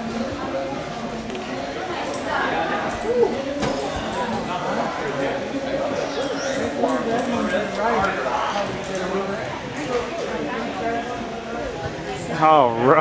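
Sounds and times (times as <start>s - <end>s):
people talking in echoing hall: 0.0s - 13.0s.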